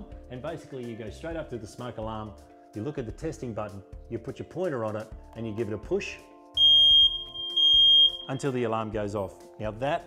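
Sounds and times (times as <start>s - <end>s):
smoke alarm beeping: 6.6s - 8.4s.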